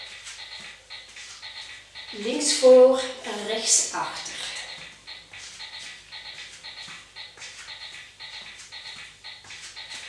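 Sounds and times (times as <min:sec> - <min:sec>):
soft footsteps on foam mat: 0:00.0 - 0:02.7, 0:04.5 - 0:10.0.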